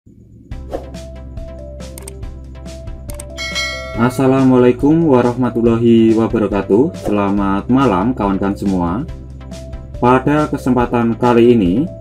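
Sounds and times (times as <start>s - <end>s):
background music: 0.3s - 12.0s
bright bell chime: 3.4s - 5.0s.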